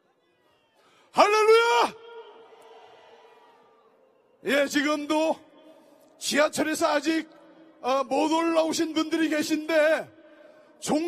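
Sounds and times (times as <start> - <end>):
man shouting through pa system: 1.2 - 2.5.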